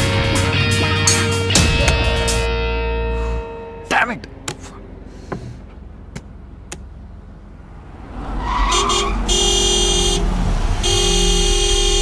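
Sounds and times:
car engine rumbling: 0:03.6 - 0:12.0
car horn honking: 0:08.4 - 0:12.0.

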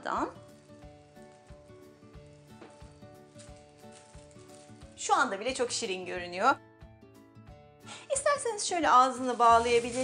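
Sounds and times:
faint background music: 0:00.0 - 0:10.0
plastic bag crinkling: 0:00.4 - 0:05.8.

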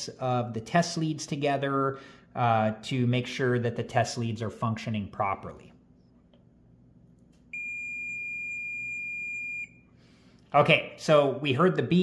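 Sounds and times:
multimeter continuity beep: 0:07.5 - 0:09.9.

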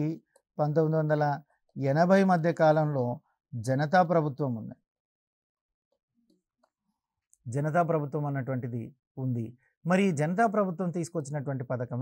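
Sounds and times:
man speaking: 0:00.0 - 0:04.8, 0:07.5 - 0:12.0.

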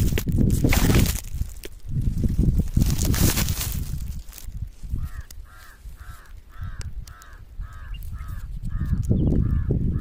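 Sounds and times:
bird calling: 0:04.9 - 0:10.0.

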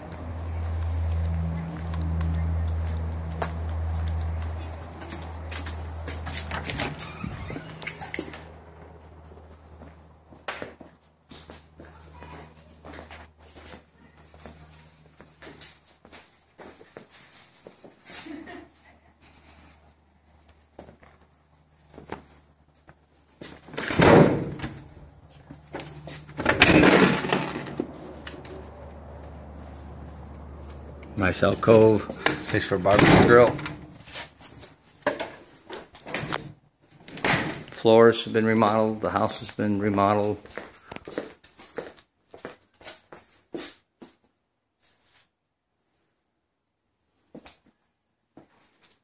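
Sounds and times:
door opening and closing: 0:06.2 - 0:08.5, 0:23.7 - 0:24.8, 0:26.3 - 0:28.6, 0:32.2 - 0:34.0, 0:35.0 - 0:37.7.

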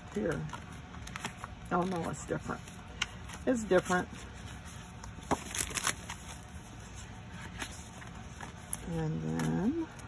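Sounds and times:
paper rustling and snapping: 0:00.0 - 0:06.5.

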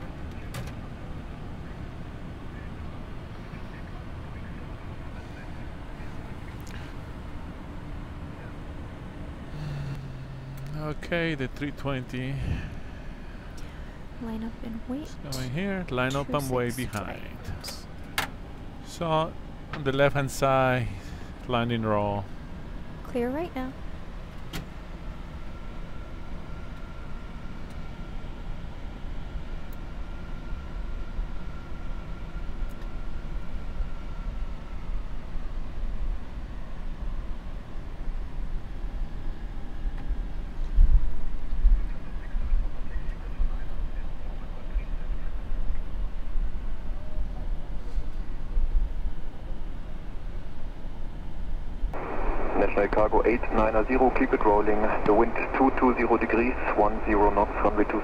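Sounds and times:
aircraft low rumble: 0:00.0 - 0:58.0
faint steady whine: 0:00.2 - 0:39.9, 0:40.7 - 0:58.0.

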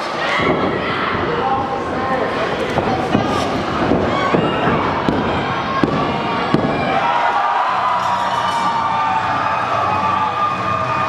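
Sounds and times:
crowd yelling: 0:00.0 - 0:11.0.

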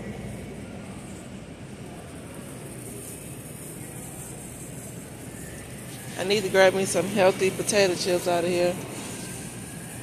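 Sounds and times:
supermarket background noise: 0:00.0 - 0:10.0
shopping cart rolling: 0:01.0 - 0:10.0.

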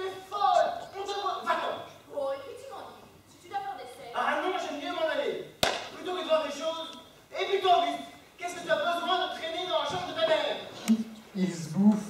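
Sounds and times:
sharp knock: 0:05.6 - 0:06.0.

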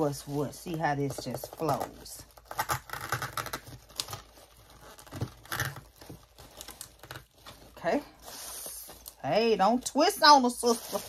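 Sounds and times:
packaging rustling and crinkling: 0:00.0 - 0:11.0.

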